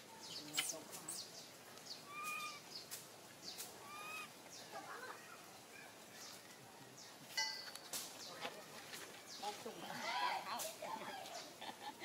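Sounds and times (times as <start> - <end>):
baby monkey coo calls: 2.0 - 2.7, 3.8 - 5.4.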